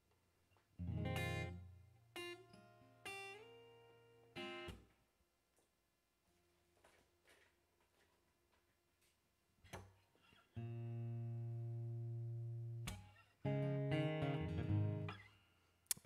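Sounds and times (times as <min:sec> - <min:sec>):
acoustic guitar strumming: 0:00.8 - 0:02.4.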